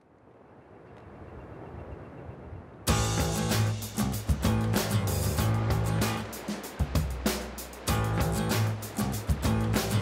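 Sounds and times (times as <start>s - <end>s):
guitar music: 2.9s - 10.0s.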